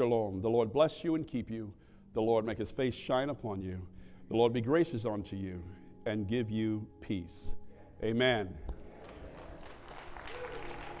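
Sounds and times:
congregation applauding: 8.8 - 11.0.

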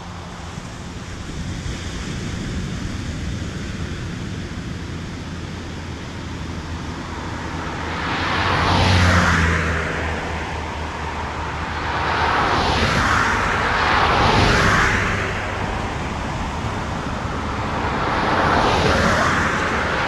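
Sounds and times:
low traffic hum: 0.0 - 20.0
car driving past: 7.1 - 20.0.

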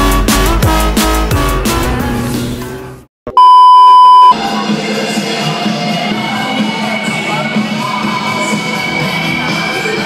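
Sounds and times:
electronic beep tone: 3.4 - 4.4.

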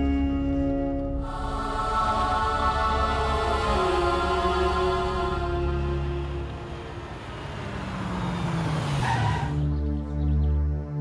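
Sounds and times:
synth music drone: 0.0 - 11.0
car driving past: 1.2 - 9.8.

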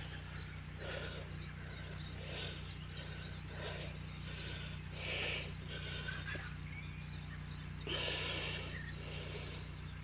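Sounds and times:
man breathing hard: 0.0 - 6.8, 7.8 - 9.9
steady low hum: 0.0 - 10.0.

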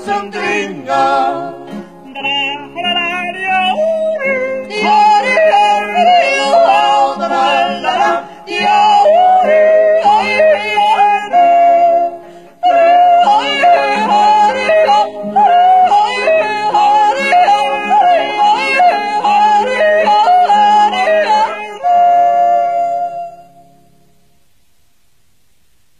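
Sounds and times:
group of voices yodeling: 0.0 - 1.6, 3.7 - 23.3.

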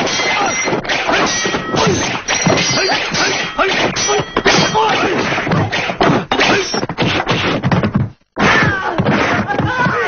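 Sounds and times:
whacks and crashing hits: 0.0 - 10.0.

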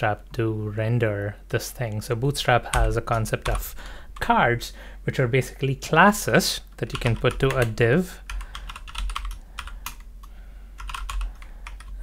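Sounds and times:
computer keyboard typing: 2.7 - 4.3, 6.9 - 12.0.

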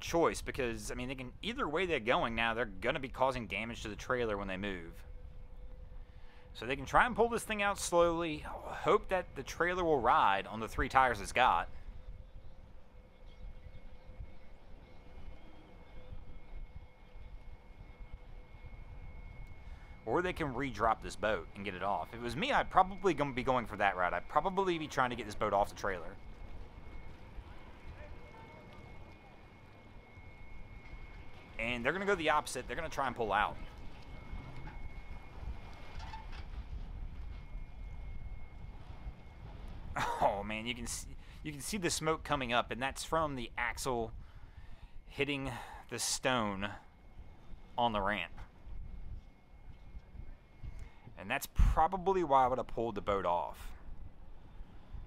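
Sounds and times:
boat engines idling: 0.0 - 42.4
thin steady hum: 0.0 - 55.0
wind on microphone: 10.6 - 23.6, 33.5 - 40.2, 43.1 - 44.8, 48.4 - 51.8.

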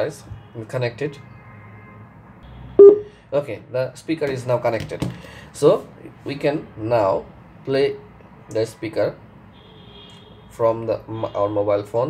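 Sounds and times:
short loud beep: 2.8 - 3.1.

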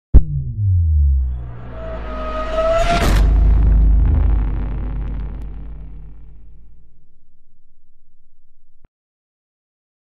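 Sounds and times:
deep cinematic impact rumble: 0.1 - 8.8.

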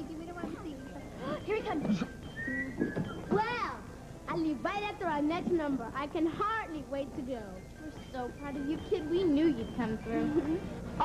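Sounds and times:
person whistling: 2.3 - 3.3.

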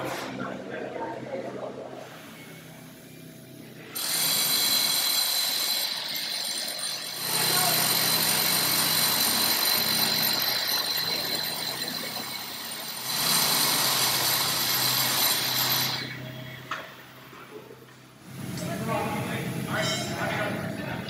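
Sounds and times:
quiet work sounds: 0.0 - 21.0
hammer drill boring into concrete: 3.9 - 16.2.

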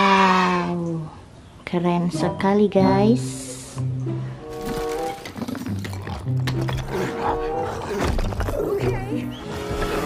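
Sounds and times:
background music: 1.7 - 10.0.

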